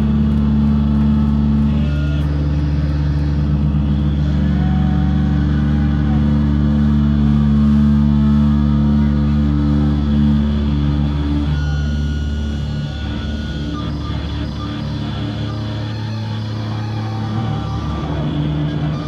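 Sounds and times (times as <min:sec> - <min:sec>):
low distorted guitar and bass drone: 0:00.0 - 0:19.0
feedback whistles: 0:11.1 - 0:19.0.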